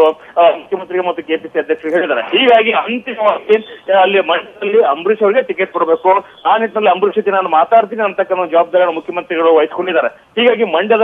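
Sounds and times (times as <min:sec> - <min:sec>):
person speaking over telephone: 0:01.8 - 0:07.0.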